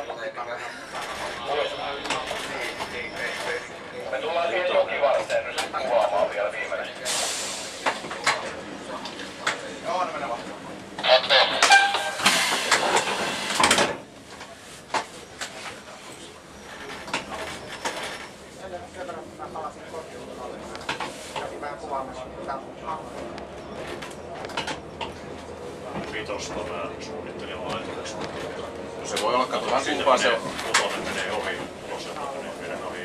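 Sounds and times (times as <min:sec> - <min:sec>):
voices talking: 0:00.0 - 0:13.2
railcar engine moving slowly: 0:00.0 - 0:33.0.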